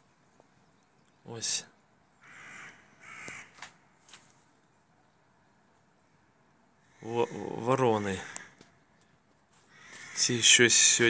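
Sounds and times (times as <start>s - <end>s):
crows cawing: 2.2s - 4.3s, 6.8s - 11.0s.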